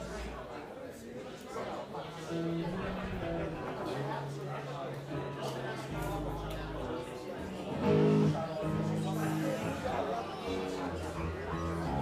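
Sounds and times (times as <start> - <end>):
voices in the room: 0.0 - 12.0
live band with amplified guitar: 2.2 - 12.0.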